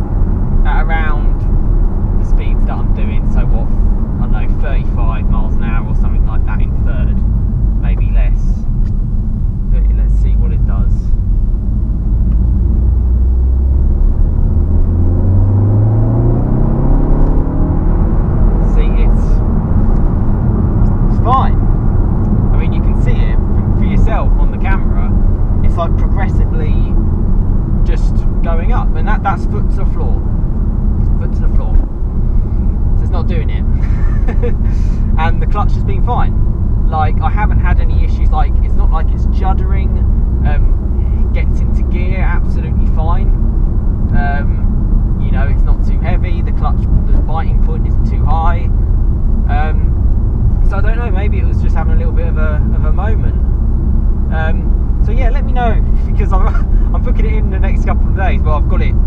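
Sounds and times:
car engine revving: 0:00.0 - 0:59.0
road noise: 0:00.0 - 0:59.0.

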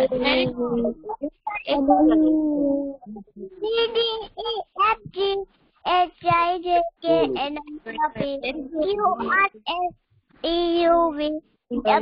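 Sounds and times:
young child singing: 0:00.0 - 0:02.5, 0:03.6 - 0:12.0.

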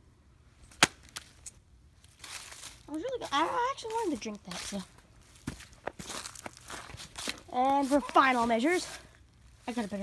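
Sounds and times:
footsteps on dry leaves: 0:02.0 - 0:10.0.

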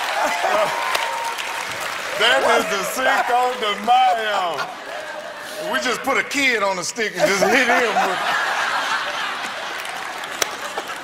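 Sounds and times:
studio audience applauding: 0:00.0 - 0:06.3, 0:07.5 - 0:11.0.

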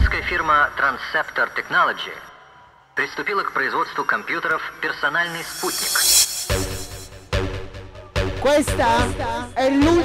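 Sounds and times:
voice over sound system: 0:03.0 - 0:06.3
white-noise riser sweeping up: 0:05.2 - 0:07.5
electronic dance track: 0:05.2 - 0:07.8.

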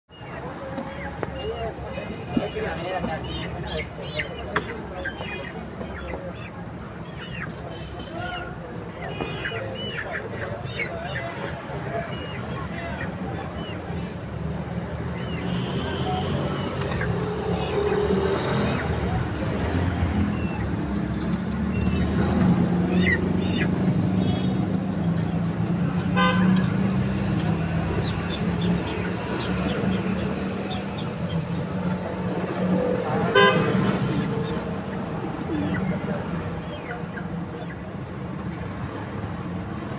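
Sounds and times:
traffic engine hum: 0:00.1 - 0:39.9
car horn toots: 0:09.1 - 0:09.6, 0:26.1 - 0:26.7, 0:33.3 - 0:33.8.

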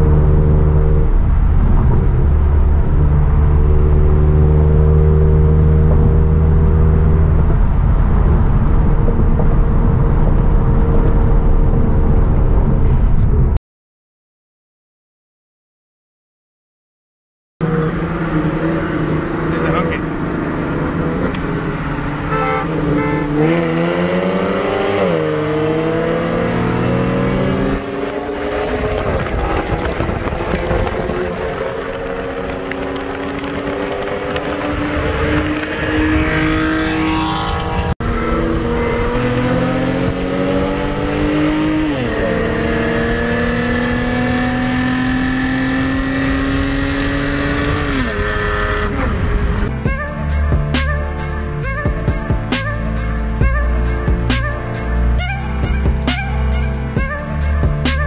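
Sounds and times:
car engine accelerating: 0:00.0 - 0:13.6, 0:17.6 - 0:51.8.

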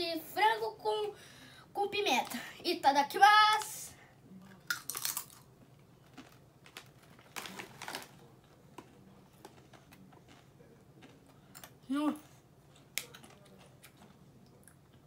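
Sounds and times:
tortilla chip crunching: 0:04.6 - 0:11.8.

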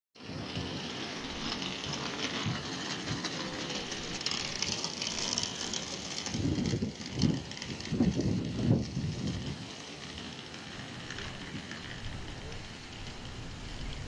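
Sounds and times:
distant traffic hiss: 0:00.2 - 0:14.0
wind gusts on microphone: 0:06.2 - 0:09.7.

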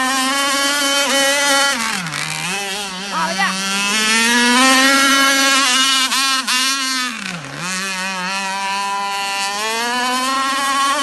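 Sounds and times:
powerboat engine running flat out: 0:00.0 - 0:11.0.

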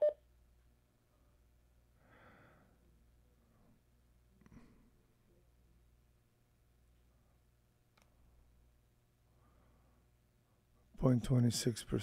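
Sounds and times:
faint low radio hum: 0:00.0 - 0:12.0.

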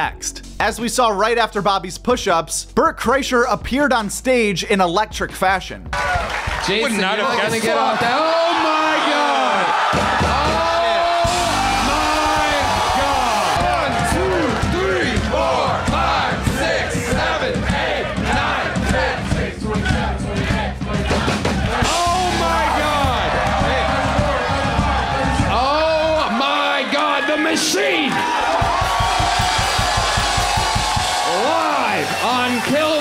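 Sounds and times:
audience chanting rhythmically: 0:07.0 - 0:27.0
fast bass drum beat: 0:09.7 - 0:26.5, 0:28.4 - 0:33.0.

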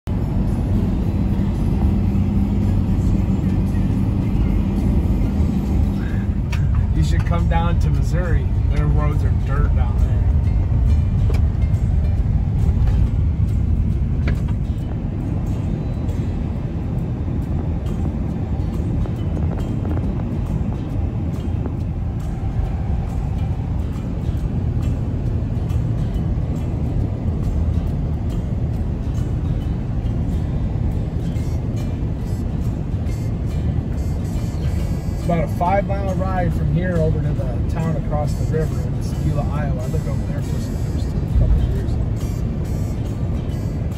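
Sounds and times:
car cabin road rumble: 0:00.0 - 0:43.9.

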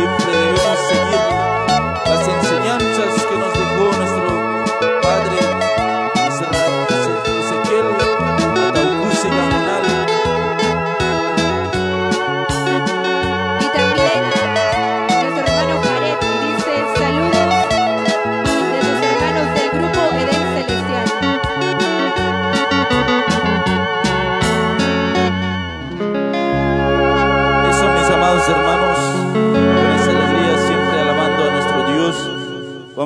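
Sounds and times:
live band playing a hymn: 0:00.0 - 0:32.7
held organ chords: 0:00.0 - 0:33.0.

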